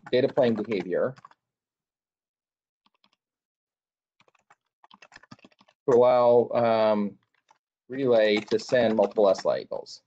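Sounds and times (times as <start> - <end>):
faint keyboard typing: 0.0 - 1.4, 2.8 - 3.2, 4.2 - 9.9.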